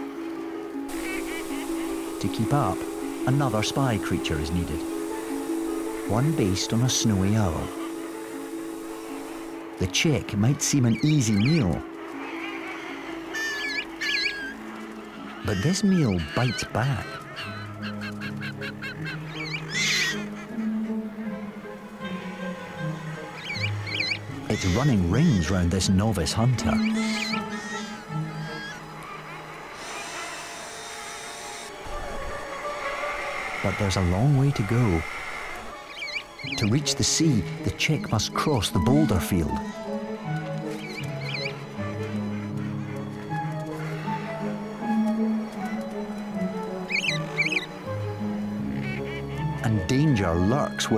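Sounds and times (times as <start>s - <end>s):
orchestral music: 0.0s - 50.9s
bird chick chirping: 35.0s - 36.7s, 46.8s - 47.8s.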